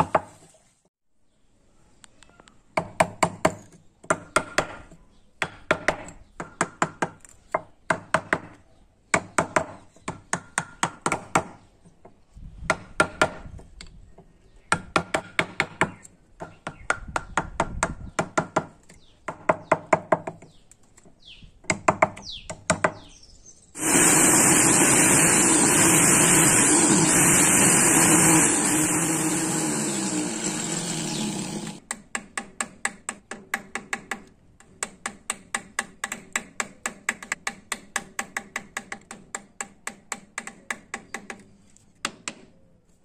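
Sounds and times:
hammer striking chisel on wood: 2.8 - 11.6, 14.7 - 18.7, 31.9 - 41.4
loud steady whirring: 23.8 - 31.8.

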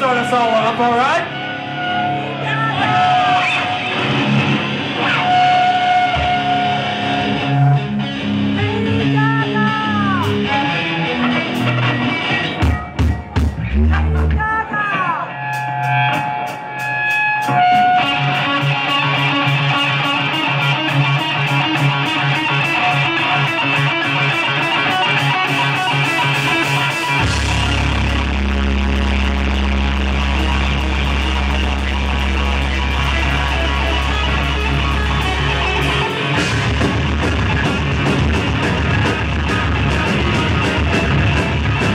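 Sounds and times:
deep bass line: 0.0 - 14.6, 15.7 - 41.9
drums: 0.0 - 41.9
electric guitar with swooping notes: 0.0 - 41.9
live rock band playing: 0.0 - 41.9.

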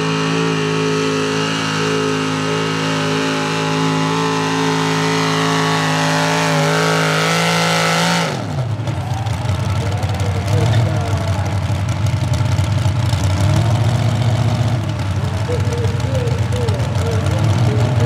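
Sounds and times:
truck engine at full throttle: 0.0 - 18.0
engine rough idle: 8.5 - 18.0.

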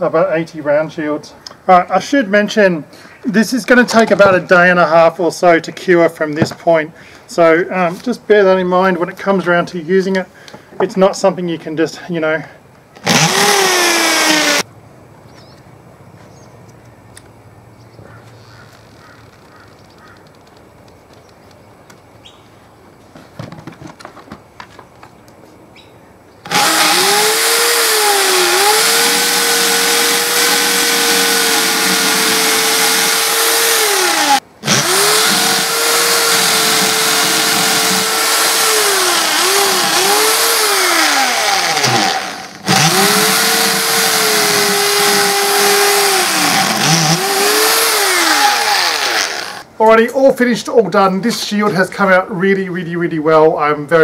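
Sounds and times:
cordless drill boring into wood: 13.0 - 14.6, 26.4 - 49.7.

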